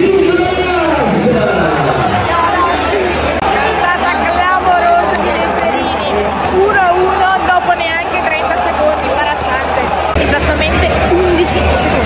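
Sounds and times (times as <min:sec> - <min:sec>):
murmur of stadium crowd: 0:00.0 - 0:12.0
woman talking: 0:03.8 - 0:12.0.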